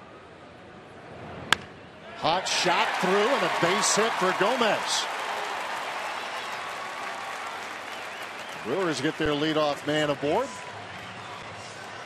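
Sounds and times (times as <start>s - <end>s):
stadium crowd noise: 0.0s - 12.0s
wooden bat cracking ball: 1.5s - 1.8s.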